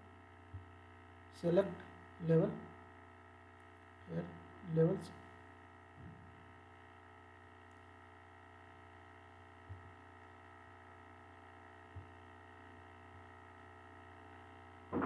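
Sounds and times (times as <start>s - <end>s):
faint electrical hum: 0.0s - 15.0s.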